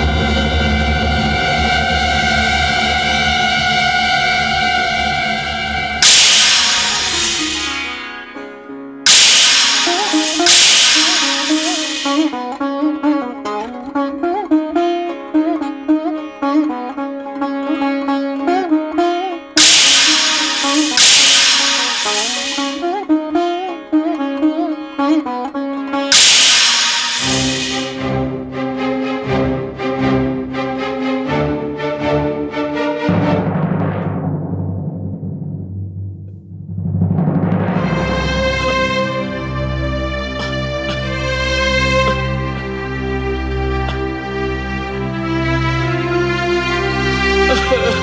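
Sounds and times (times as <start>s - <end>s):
plucked string melody: 0.0s - 33.9s, 37.6s - 48.0s
loud bright ringing strikes: 6.0s - 8.2s, 9.1s - 12.4s, 19.6s - 22.8s, 26.1s - 28.0s.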